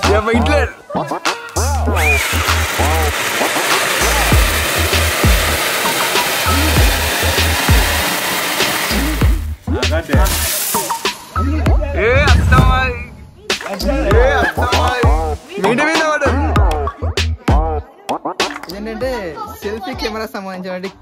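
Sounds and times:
hip-hop music: 0.0s - 2.2s, 8.9s - 21.0s
firework fountain hissing: 1.8s - 13.2s.

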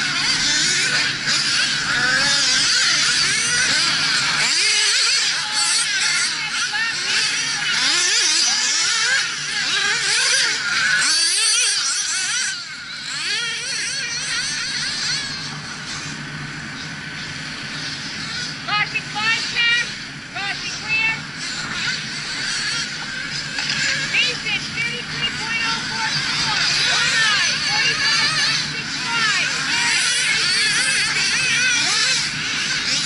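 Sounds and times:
small nitro engines revving: 0.0s - 33.0s.

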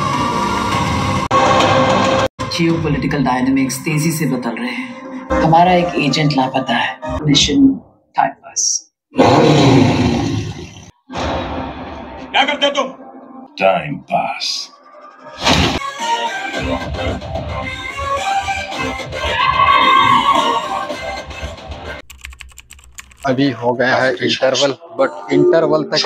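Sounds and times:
film soundtrack music: 0.0s - 8.0s, 11.1s - 22.1s
deep roar-like blast: 9.2s - 12.0s
keyboard typing clicks: 22.0s - 23.2s.

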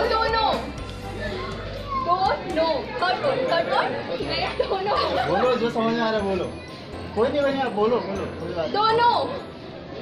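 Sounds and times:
young women talking: 2.0s - 5.2s.

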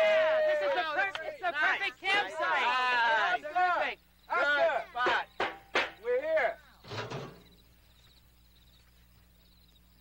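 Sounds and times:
quiet steady hum: 0.0s - 10.0s
metal lid scraping and clunking: 6.8s - 7.5s.

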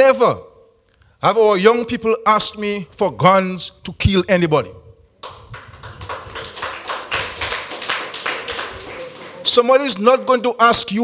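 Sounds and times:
audience clapping: 5.2s - 9.7s.

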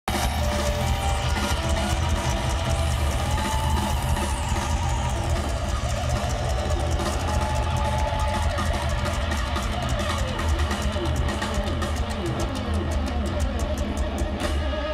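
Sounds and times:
stadium crowd: 0.0s - 14.9s
live rock music: 0.1s - 14.9s.

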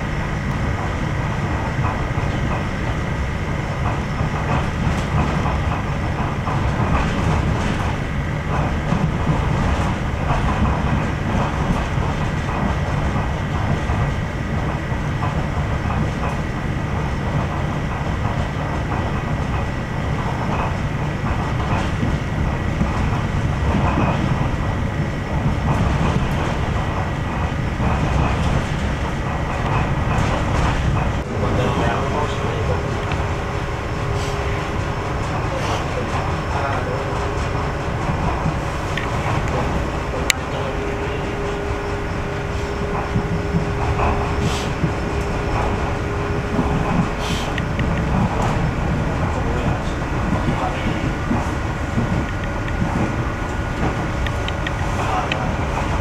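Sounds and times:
train wheels rumbling on track: 0.0s - 56.0s.

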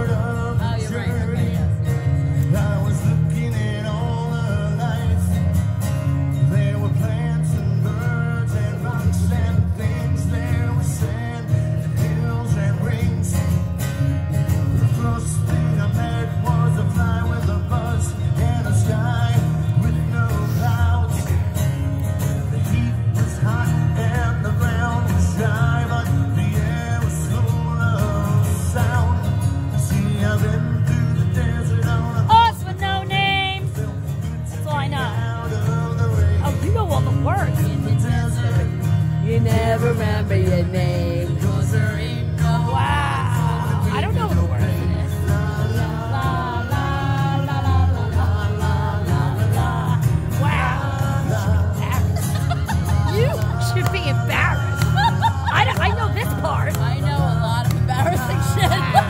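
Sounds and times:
acoustic guitar strumming: 0.0s - 59.0s
man singing: 0.0s - 59.0s.

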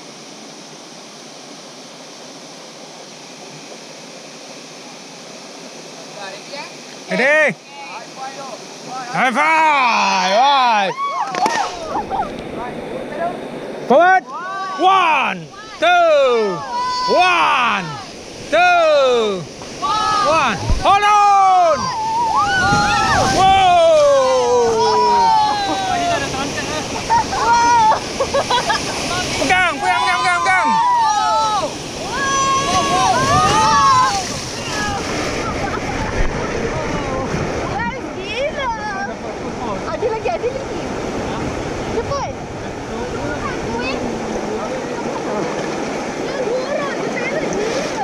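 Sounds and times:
rushing splashing river water: 0.0s - 48.0s
people yelling: 9.0s - 12.4s, 13.9s - 36.1s.

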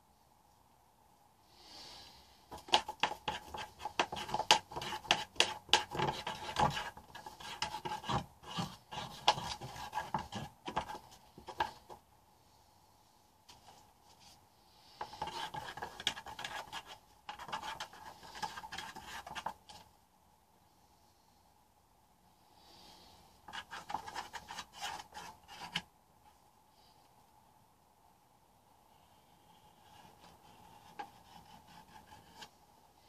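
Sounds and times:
hand scraping paint: 2.5s - 12.0s, 14.2s - 19.8s, 23.5s - 25.8s.

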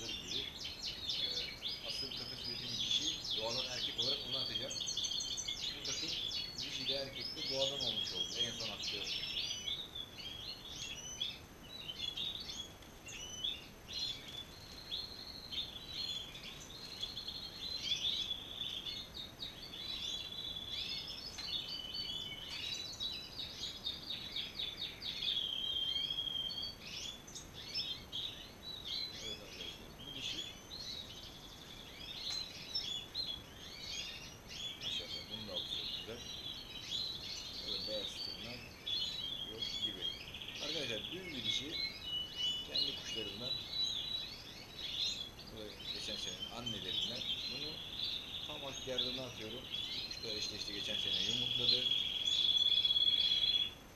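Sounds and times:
goldfinches twittering: 0.0s - 53.9s.

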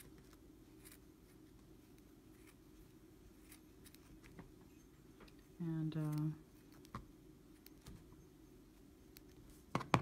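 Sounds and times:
low room hum: 0.0s - 10.0s
scissors snipping yarn: 5.3s - 7.0s.

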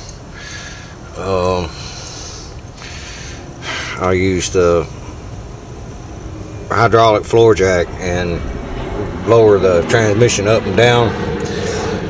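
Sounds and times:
low background rumble: 0.0s - 12.0s
person breathing: 0.3s - 1.0s, 1.7s - 4.0s, 11.4s - 12.0s.

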